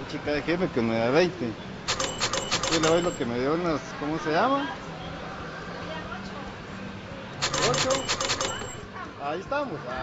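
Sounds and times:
cash register clacks: 1.9s - 3.2s, 7.4s - 8.8s
cash register ring: 1.9s - 3.3s, 7.4s - 8.8s.

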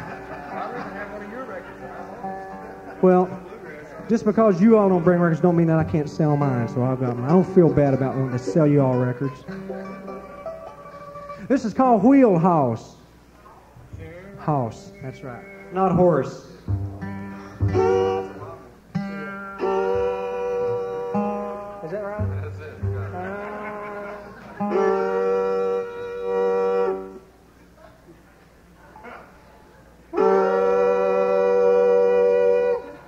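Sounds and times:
string instruments tuning: 0.0s - 12.9s, 14.0s - 27.3s, 30.1s - 33.0s.

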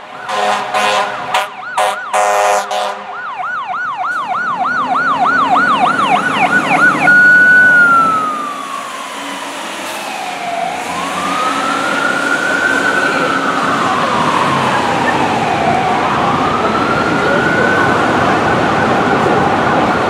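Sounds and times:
fire truck air horn blasts: 0.0s - 3.2s
electronic siren: 0.0s - 20.0s.

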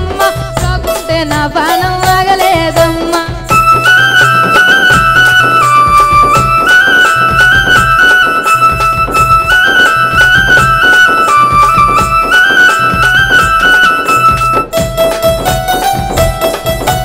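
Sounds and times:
dholak beat: 0.0s - 17.0s
jingling frame drum: 0.0s - 17.0s
keyboard melody: 0.0s - 17.0s.

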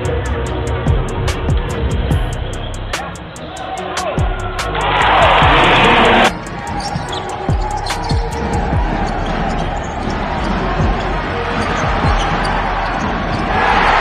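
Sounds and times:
arena crowd noise: 0.0s - 14.0s
loud crowd roar: 3.0s - 14.0s.

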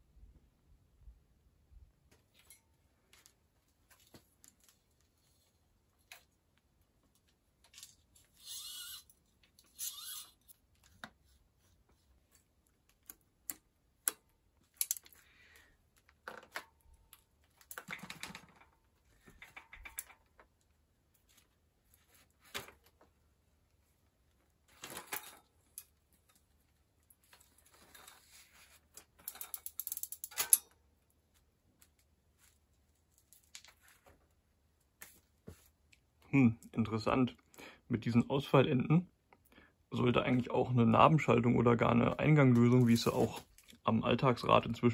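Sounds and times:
metallic clicks and rattles of tools: 12.9s - 15.2s, 16.0s - 20.5s, 28.9s - 30.8s.

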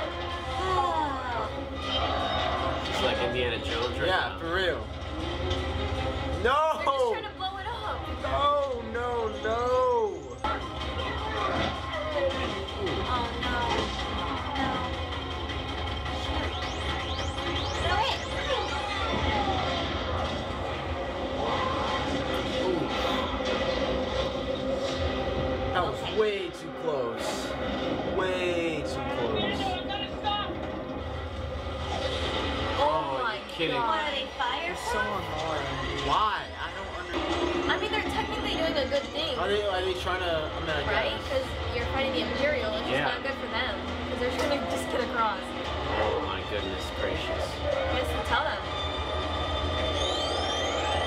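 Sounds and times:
people yelling: 0.0s - 3.3s, 18.0s - 23.2s
electronic beeping: 48.8s - 51.0s
rising whistling sweeps: 49.0s - 51.0s.

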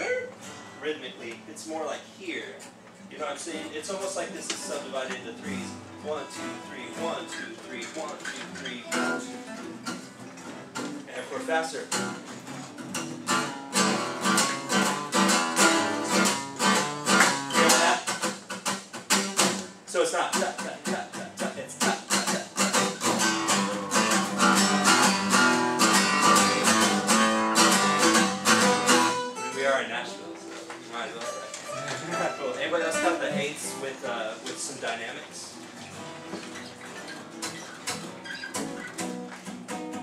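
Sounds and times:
acoustic guitar strumming: 0.0s - 40.0s.

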